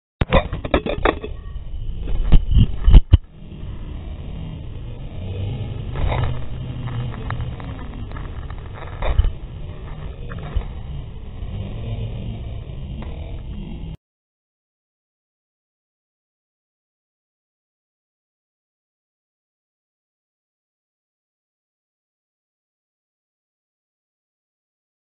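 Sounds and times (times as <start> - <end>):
muffled low rumble: 0.2 - 14.0.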